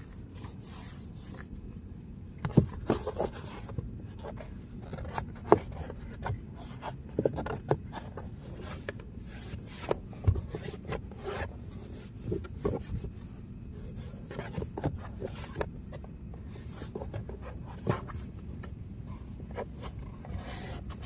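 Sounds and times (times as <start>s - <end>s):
paper towel scraping plastic: 19.4s - 21.0s.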